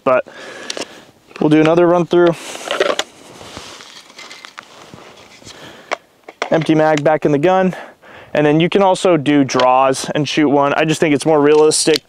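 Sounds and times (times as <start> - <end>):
light scuffing: 2.3 - 5.6.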